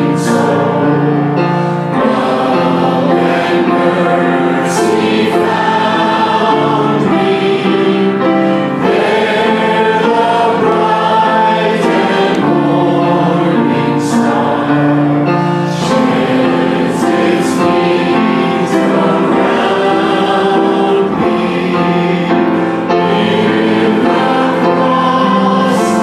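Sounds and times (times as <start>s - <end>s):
congregation singing: 0.0s - 26.0s
instrumental accompaniment: 0.0s - 26.0s
voices singing into microphones: 0.0s - 26.0s.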